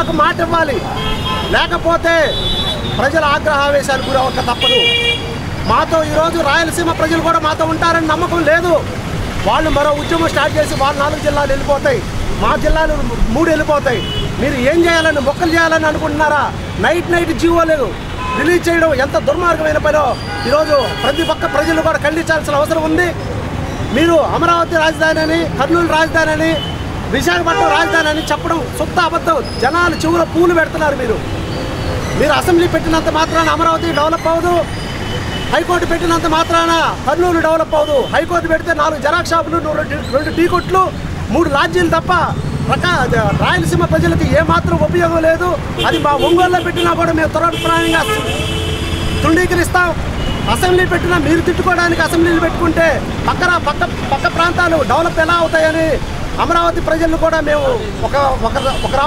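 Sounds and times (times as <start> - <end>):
man speaking: 0.0 - 23.2, 23.9 - 31.3, 32.2 - 34.7, 35.5 - 48.5, 49.2 - 59.0
man talking: 0.0 - 23.2, 23.9 - 31.3, 32.1 - 34.7, 35.5 - 48.6, 49.2 - 59.0
street traffic rumble: 0.0 - 59.0.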